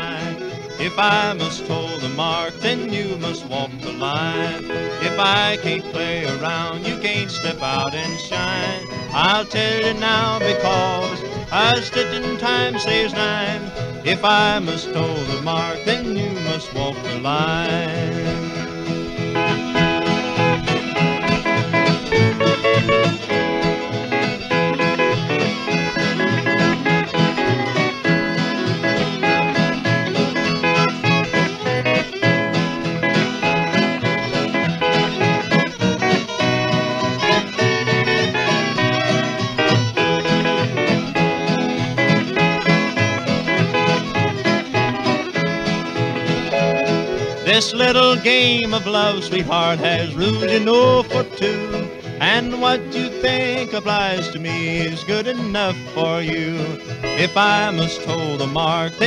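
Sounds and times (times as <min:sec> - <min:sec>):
country string band playing: 0:00.0 - 0:59.0.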